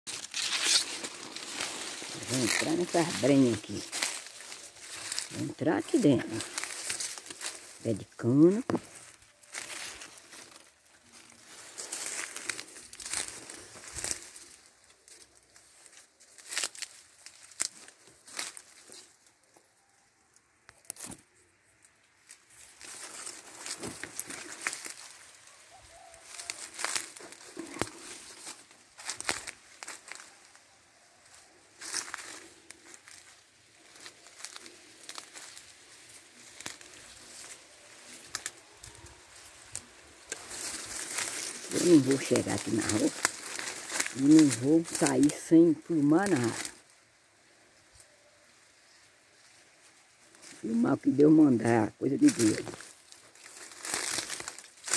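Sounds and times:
dry leaves rustling and crackling: 0.1 - 54.9.

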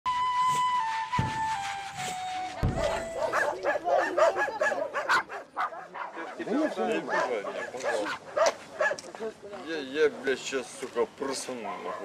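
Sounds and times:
low thuds: 0.6 - 3.3
dog barking rapidly: 3.1 - 9.0, 11.6 - 12.0.

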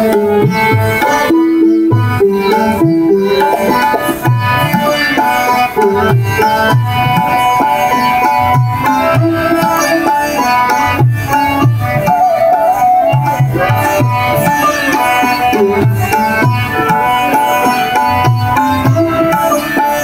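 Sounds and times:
bansuri flute melody: 0.0 - 20.0
harmonium: 0.0 - 20.0
sitar: 0.0 - 20.0
tabla drumming: 0.0 - 20.0.

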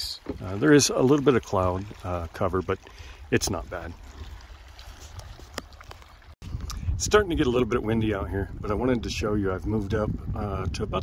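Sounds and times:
water lapping against kayak: 0.0 - 11.0
wind on microphone: 1.7 - 11.0.

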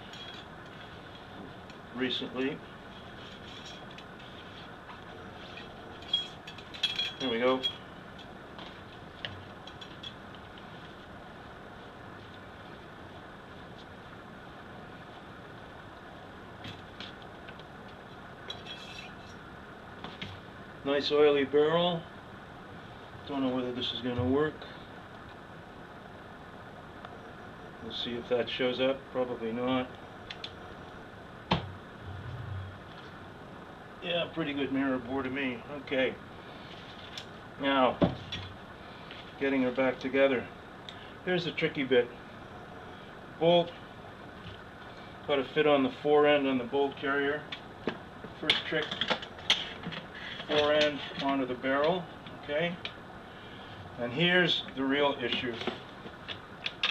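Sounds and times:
faint low hum: 0.0 - 47.5
low room hiss: 0.0 - 56.9.

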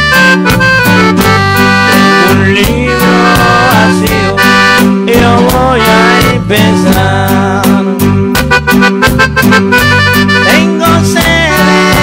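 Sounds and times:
keyboard instrumental with drum beat: 0.0 - 12.0.

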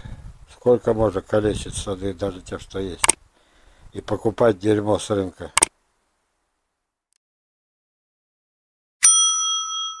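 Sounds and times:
notification bell ding: 9.0 - 10.0.

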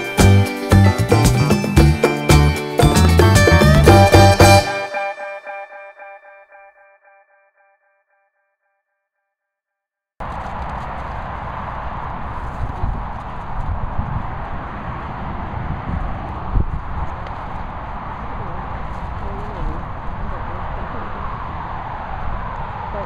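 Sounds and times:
guitar music: 0.0 - 8.0
wind on microphone: 10.2 - 23.0.

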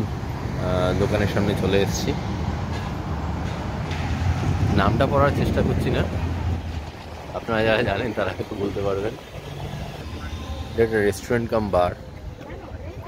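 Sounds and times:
low vehicle rumble: 0.0 - 13.0
voices talking: 4.7 - 13.0.

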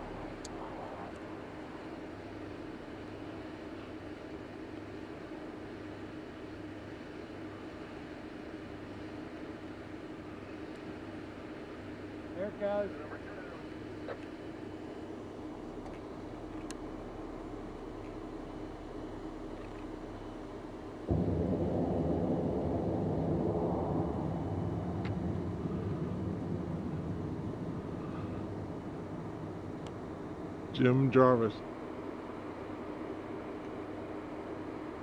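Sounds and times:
distant rocket motor rumble: 0.0 - 5.9, 9.3 - 35.0.

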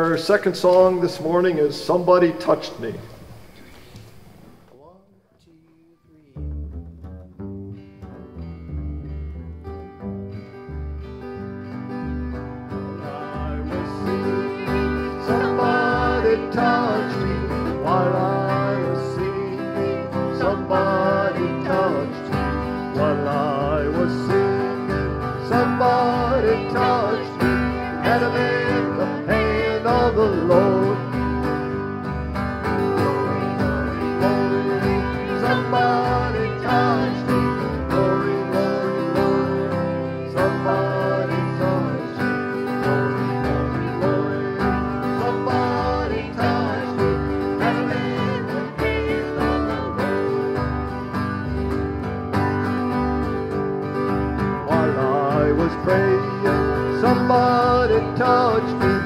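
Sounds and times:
plucked upright bass: 6.4 - 18.4
strummed acoustic guitars: 6.4 - 59.0.

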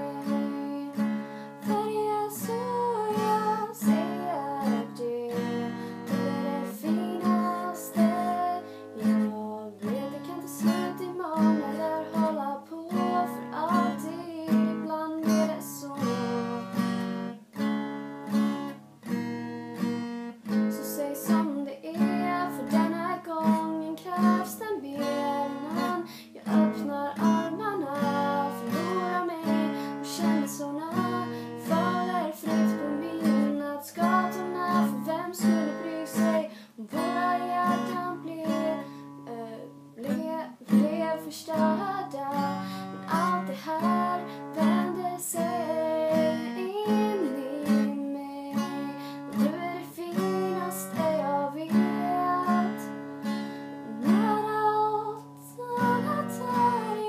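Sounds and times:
woman singing: 0.0 - 17.4, 20.5 - 57.0
acoustic guitar strumming: 0.0 - 57.0.

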